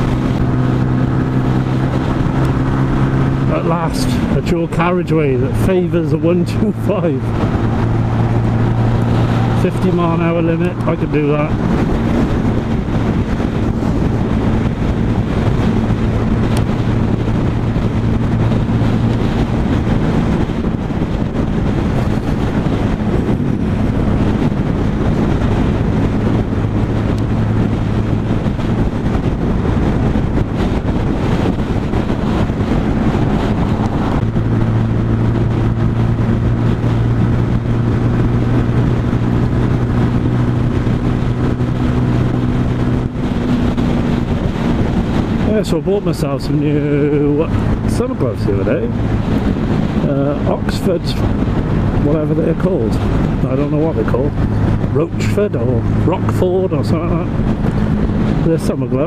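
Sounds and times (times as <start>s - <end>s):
motorcycle engine cruising: 0.0s - 59.0s
wind and road noise: 0.0s - 59.0s.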